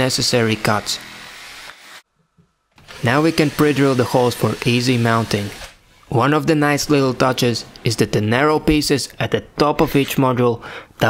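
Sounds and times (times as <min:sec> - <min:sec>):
jigsaw cutting wood: 0:00.5 - 0:02.0, 0:02.8 - 0:05.8.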